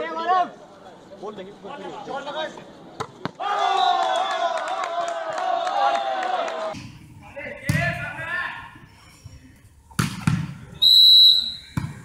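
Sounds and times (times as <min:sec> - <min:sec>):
volleyball hits: 0:11.6 - 0:12.0.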